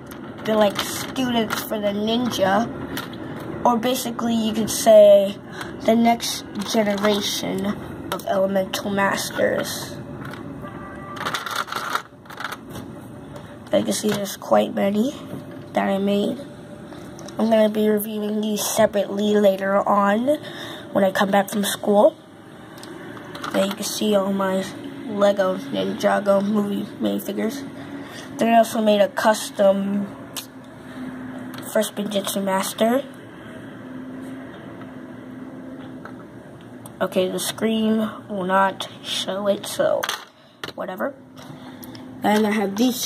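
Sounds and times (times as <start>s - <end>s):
faint constant tone: 0.0s - 43.0s
steady background hum: 0.0s - 43.0s
plastic pieces clicking and rattling: 11.2s - 12.6s
plastic pieces shuffling: 11.2s - 12.6s.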